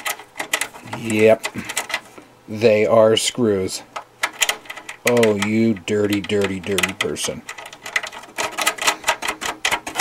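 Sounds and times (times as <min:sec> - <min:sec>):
rubber foot clicking and creaking: 0:04.0 - 0:10.0.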